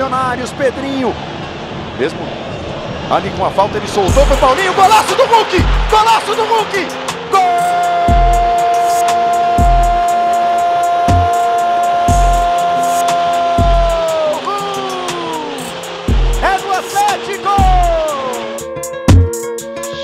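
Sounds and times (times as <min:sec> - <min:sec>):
background music with thumping beat: 0:04.1 - 0:10.2, 0:11.1 - 0:11.5, 0:12.1 - 0:20.0
commentator shouting goal: 0:04.1 - 0:15.6, 0:16.4 - 0:18.5.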